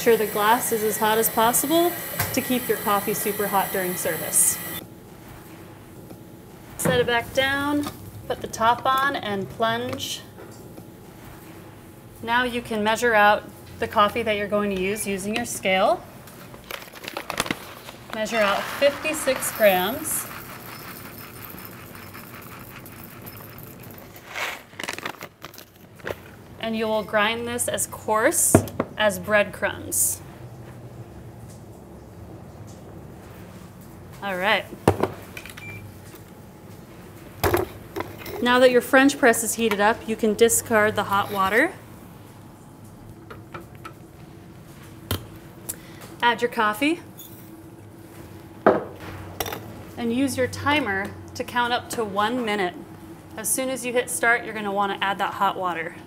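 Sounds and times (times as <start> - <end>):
paper bag rustle: 16.5 - 20.8
coffee beans pouring into cup: 18.1 - 25.0.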